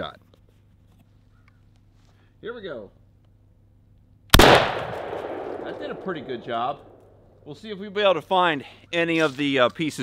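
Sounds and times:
shotgun shot with echo: 0:04.4 - 0:07.1.

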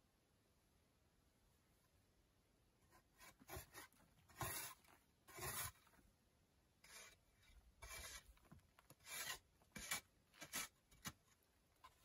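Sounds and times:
shovel scraping soil: 0:03.5 - 0:05.9, 0:07.8 - 0:11.2.

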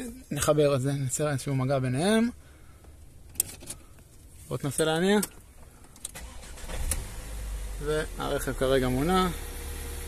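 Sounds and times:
car engine cranking and running: 0:06.0 - 0:10.0.

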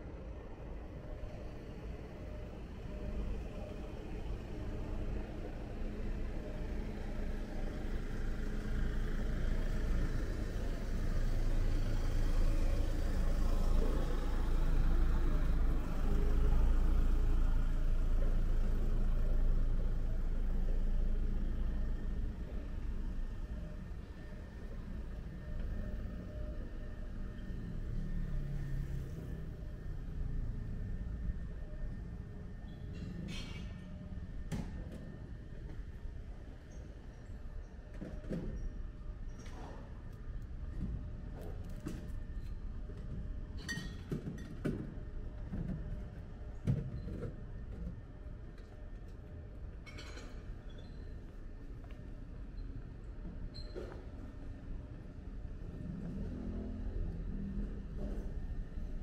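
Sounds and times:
street traffic: 0:00.0 - 0:59.0
vehicle engine rumbling: 0:00.0 - 0:59.0.

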